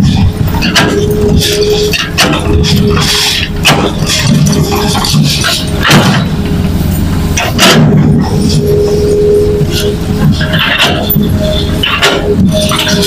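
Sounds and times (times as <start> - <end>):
excavator diesel engine running: 0.0 - 13.0.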